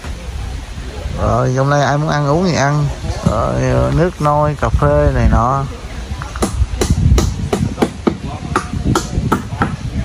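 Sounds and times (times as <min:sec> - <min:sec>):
sharp knocks: 0:06.3 - 0:09.8.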